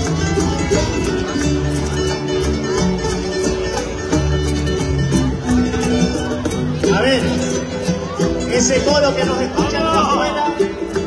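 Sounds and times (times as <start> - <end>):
plucked strings: 0.0 - 11.0
sustained bass line: 0.0 - 11.0.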